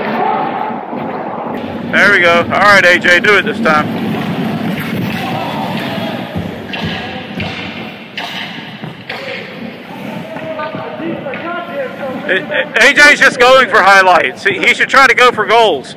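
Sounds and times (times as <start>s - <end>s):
players' voices echoing: 0.0s - 15.9s
skate blades scraping ice: 3.0s - 12.6s
hockey stick knocking puck: 3.9s - 11.6s.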